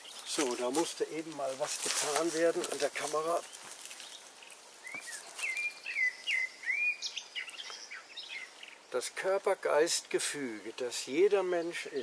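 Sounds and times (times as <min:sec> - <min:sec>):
light background hiss: 0:00.0 - 0:12.0
songbird whistling: 0:04.8 - 0:08.6.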